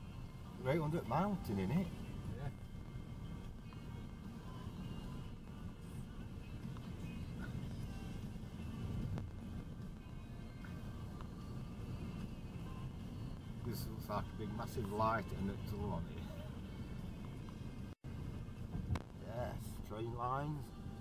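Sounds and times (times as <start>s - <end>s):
faint music: 0.0s - 21.0s
tyre and engine rumble in car: 0.0s - 21.0s.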